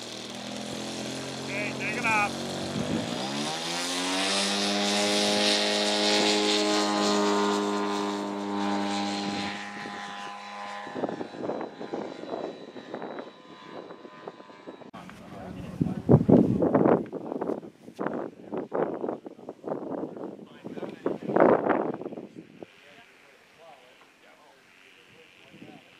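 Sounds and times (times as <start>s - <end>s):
model plane engine at full throttle: 0.0s - 17.0s, 19.1s - 25.9s
wind buffeting microphone: 1.8s - 3.4s, 6.3s - 22.8s.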